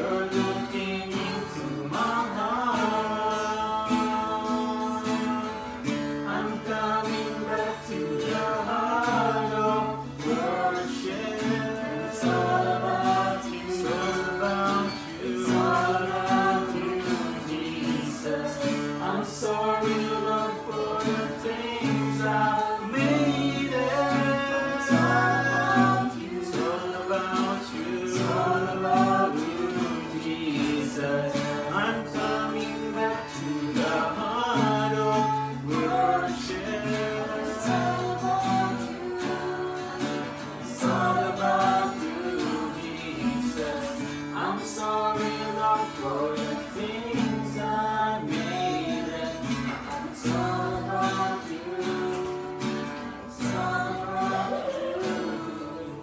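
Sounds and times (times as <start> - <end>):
acoustic guitars strummed: 0.0 - 56.0
group singing worship song: 0.0 - 56.0.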